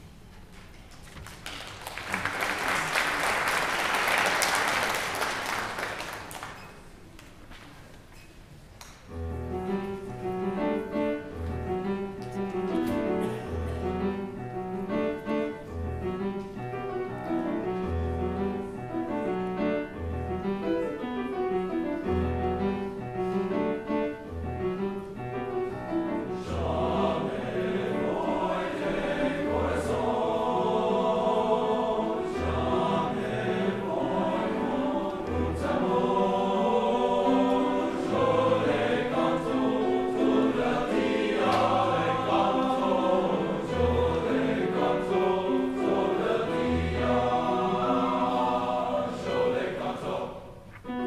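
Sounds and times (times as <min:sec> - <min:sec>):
audience applause: 0:00.9 - 0:06.7
grand piano rhythmic playing: 0:09.1 - 0:51.0.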